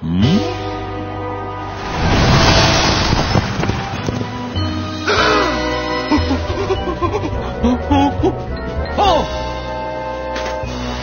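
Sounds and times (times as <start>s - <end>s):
cartoon rushing wind: 1.8s - 4.5s.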